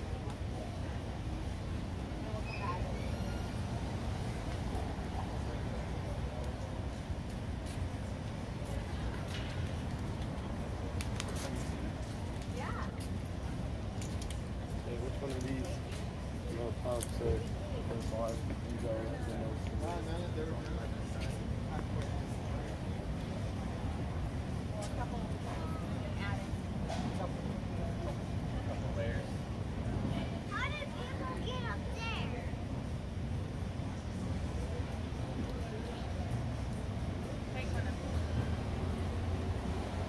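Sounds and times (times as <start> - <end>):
street rumble: 0.0 - 40.0.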